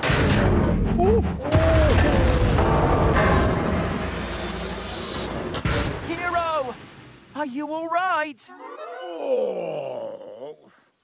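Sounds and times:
pained cartoon groan: 8.6s - 10.8s.

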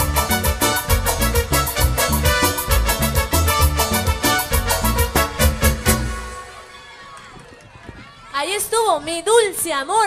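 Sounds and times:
live cumbia band: 0.0s - 6.8s.

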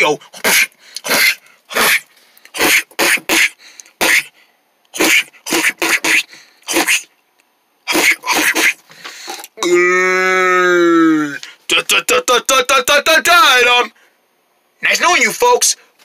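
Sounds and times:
person making grunts and mouth noises: 0.3s - 4.3s, 4.9s - 7.1s, 7.9s - 11.4s.

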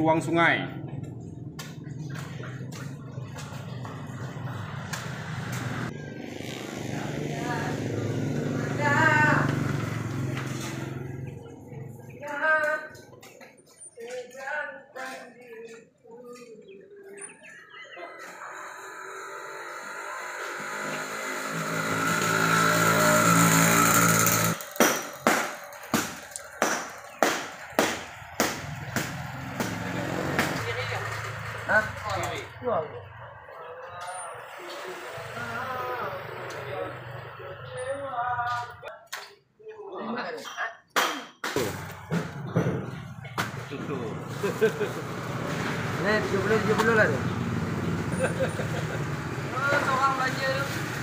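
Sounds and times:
people's voices: 6.9s - 20.4s, 30.3s - 41.2s
sharp knocks: 24.7s - 30.6s.

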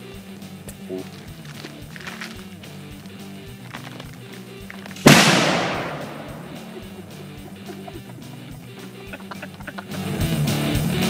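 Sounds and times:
guitar music: 0.0s - 11.0s
sudden loud blast: 5.0s - 7.2s.

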